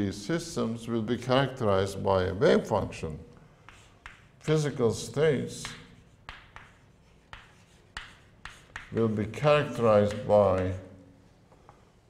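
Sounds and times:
chalk scraping: 3.6 - 4.5, 5.6 - 9.2
chalk tapping on blackboard: 3.6 - 4.5, 5.5 - 10.8.

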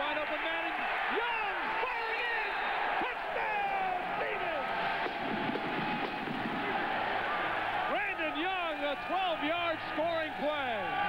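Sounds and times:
stadium crowd cheering: 0.0 - 11.0.

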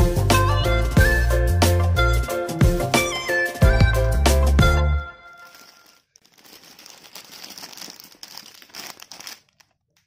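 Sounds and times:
plastic bag crinkling: 5.3 - 10.0.

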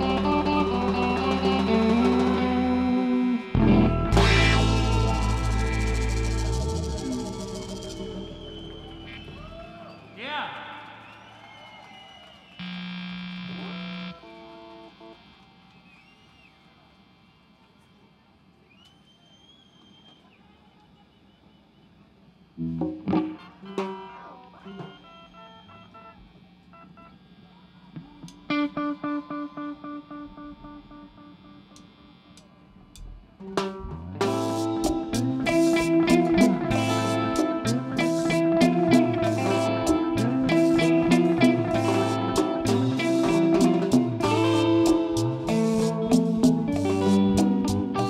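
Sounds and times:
live rock band playing: 0.0 - 9.4, 22.7 - 25.1, 33.6 - 48.0
repeated picked guitar notes: 0.0 - 9.4, 22.6 - 25.0, 28.0 - 48.0
strummed guitar chords: 0.0 - 9.4, 33.6 - 48.0
electric guitar notes with effects: 0.0 - 10.1, 12.6 - 15.4, 22.6 - 26.4, 28.0 - 48.0.

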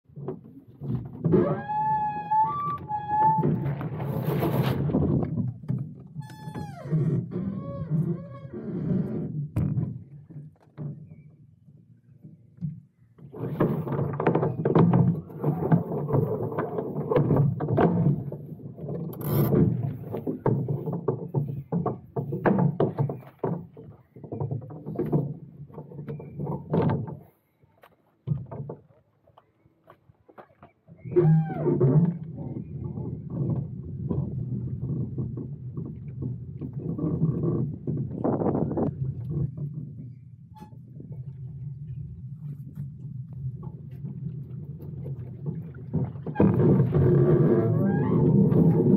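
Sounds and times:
wind rumbling on microphone: 0.1 - 11.2, 31.0 - 48.9
knocks and rattles on boat hull: 0.1 - 11.3, 12.2 - 27.4, 28.2 - 29.0, 30.3 - 41.4, 43.4 - 48.9
rope and sail rustling: 0.4 - 6.2.

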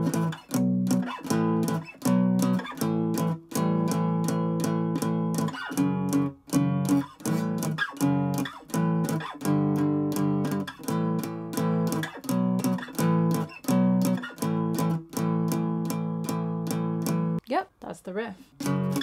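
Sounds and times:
acoustic guitar strumming chords: 0.0 - 17.4, 18.6 - 19.0.

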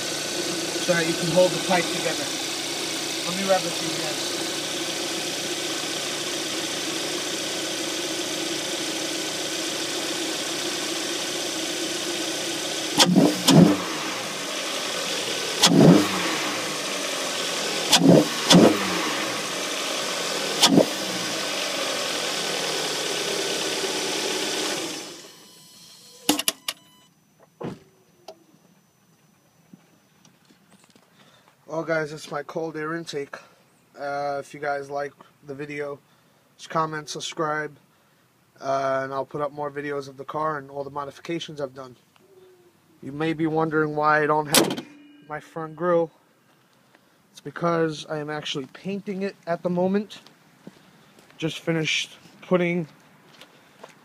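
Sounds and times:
car engine idling and revving: 0.0 - 26.9.

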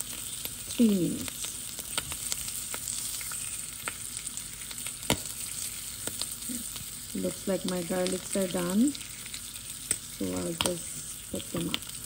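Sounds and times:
food sizzling in butter: 0.0 - 12.0.

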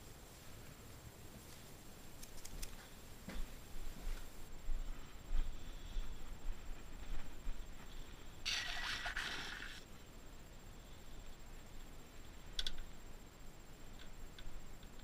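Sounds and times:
soft footsteps: 0.2 - 1.9, 2.7 - 8.2
light clicks: 2.2 - 2.9.

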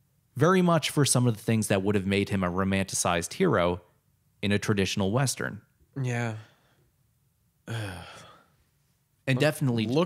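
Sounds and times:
man sighing: 6.0 - 6.6, 7.7 - 8.5.

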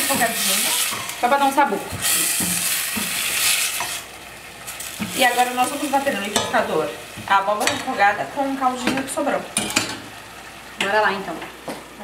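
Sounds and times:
spatula stirring in pot: 0.0 - 4.1
food sizzling in hot oil: 0.0 - 12.0.

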